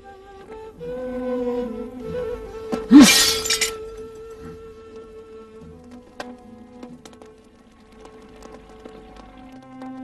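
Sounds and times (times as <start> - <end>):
background music steady note: 0.0 - 10.0
something shattering: 2.9 - 3.8.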